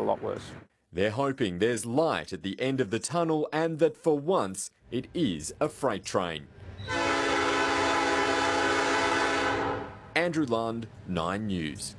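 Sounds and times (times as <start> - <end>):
train air horn chord: 6.9 - 10.0.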